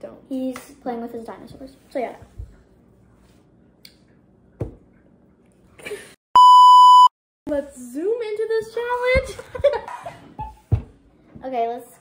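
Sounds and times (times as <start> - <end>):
loud steady high beep: 6.4 - 7.1.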